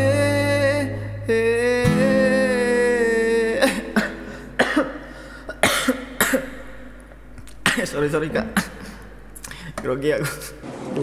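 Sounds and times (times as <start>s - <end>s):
man singing with vibrato: 0.0s - 5.6s
acoustic guitar strumming: 0.0s - 9.8s
short coughs: 5.6s - 6.6s.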